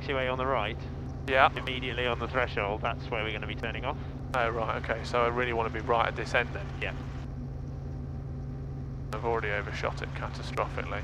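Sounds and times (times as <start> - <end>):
helicopter engine and rotors drone: 0.0 - 11.0.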